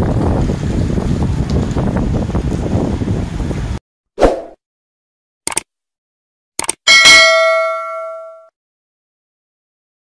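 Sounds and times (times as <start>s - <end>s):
notification bell ding: 6.9s - 8.5s.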